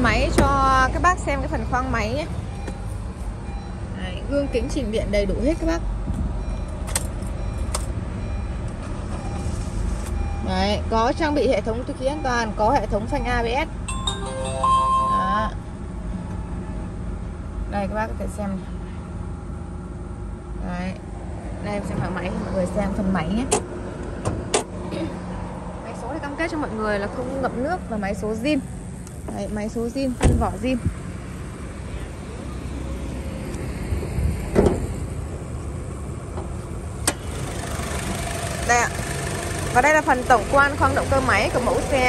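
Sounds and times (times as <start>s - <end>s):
car engine idling: 35.0s - 42.0s.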